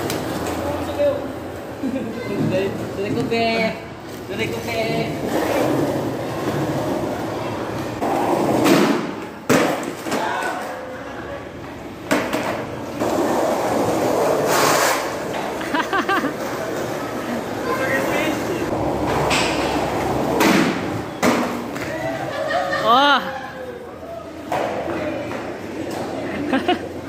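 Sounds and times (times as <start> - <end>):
skateboard wheels rolling on concrete: 0.0 - 22.4, 23.7 - 27.0.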